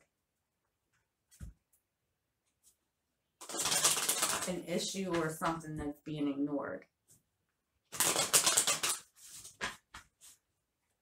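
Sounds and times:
cards being riffled: 3.4s - 5.2s, 7.9s - 10.4s.

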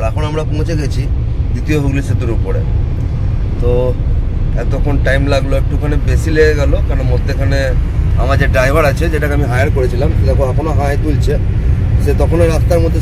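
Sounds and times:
man talking: 0.0s - 2.7s, 3.6s - 13.0s
car engine and road noise: 0.0s - 13.0s.

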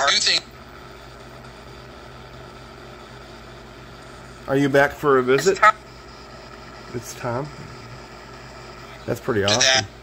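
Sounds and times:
radio scanning hiss: 0.0s - 1.0s, 4.0s - 10.0s.

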